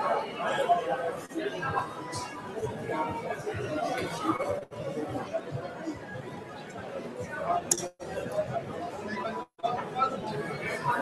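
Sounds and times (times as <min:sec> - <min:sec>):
crowd chatter in a hall: 0:00.0 - 0:11.0.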